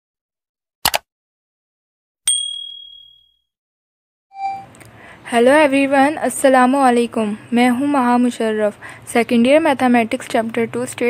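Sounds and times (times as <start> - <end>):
notification bell ding: 2.3 - 3.4, 4.4 - 4.6.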